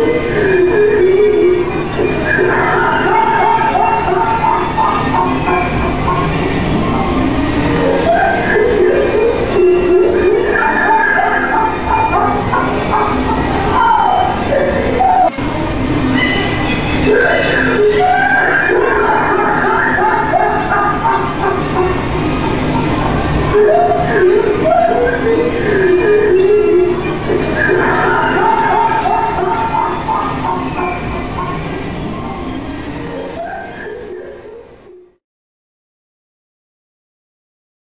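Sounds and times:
recorded mechanical laughing: 0:00.0 - 0:34.7
faint music: 0:00.0 - 0:35.2.

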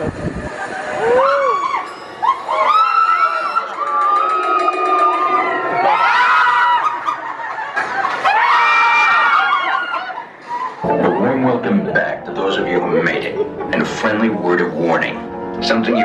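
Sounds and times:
riders screaming: 0:00.8 - 0:07.0.

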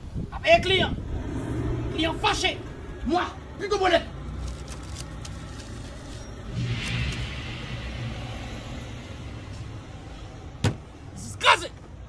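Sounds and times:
motor vehicle rumbling by: 0:00.6 - 0:11.0.

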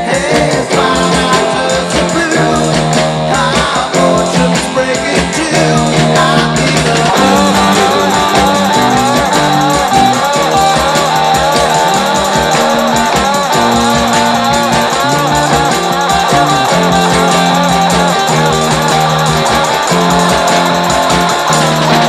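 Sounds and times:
bass line: 0:00.0 - 0:22.0
electric guitar: 0:00.0 - 0:22.0
fast steady drum beat: 0:00.0 - 0:22.0.

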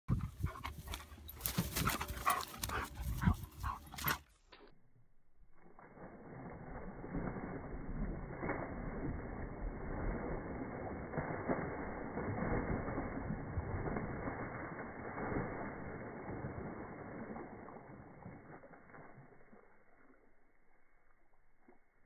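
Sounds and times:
dog running through dry grass: 0:00.2 - 0:04.3.

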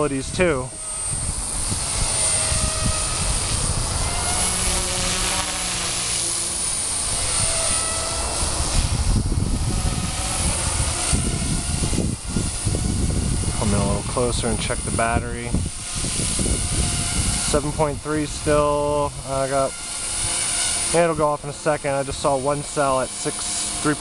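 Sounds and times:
rc helicopter motor whine: 0:00.0 - 0:24.0.

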